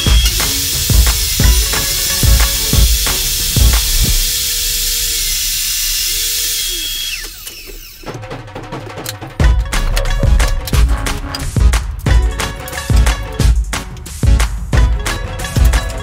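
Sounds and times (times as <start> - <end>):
background music with drum beat: 0.0 - 4.4, 8.1 - 16.0
table saw running: 0.0 - 8.2.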